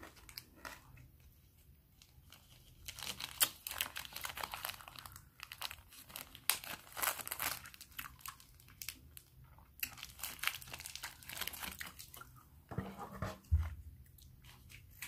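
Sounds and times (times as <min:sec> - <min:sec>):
plastic wrapper crinkling: 0:02.0 - 0:12.3.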